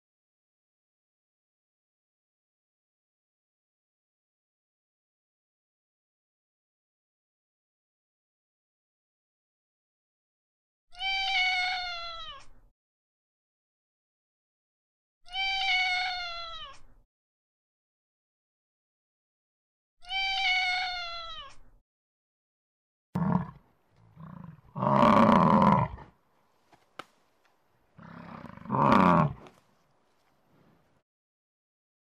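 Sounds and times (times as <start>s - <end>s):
cat meowing: 10.9s - 12.6s, 15.3s - 16.9s, 20.0s - 21.6s
cattle lowing: 28.0s - 29.6s.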